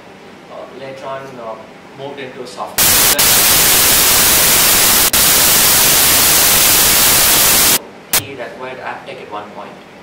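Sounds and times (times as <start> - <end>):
loud static hiss: 2.7 - 8.3.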